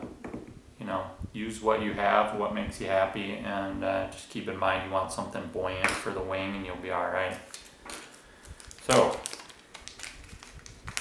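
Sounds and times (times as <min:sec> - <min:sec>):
fingers crinkling small packet: 0:07.5 - 0:11.0.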